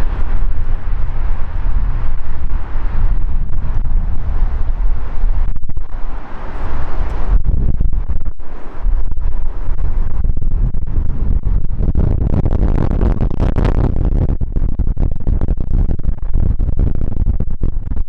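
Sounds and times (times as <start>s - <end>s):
low rumble of airplane landing: 0.0s - 18.0s
wind buffeting microphone: 0.0s - 18.0s.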